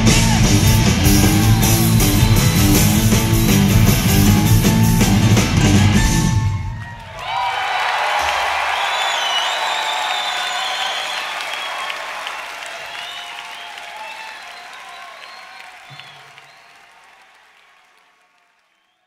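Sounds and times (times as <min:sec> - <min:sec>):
audience applauding: 0:00.0 - 0:19.0.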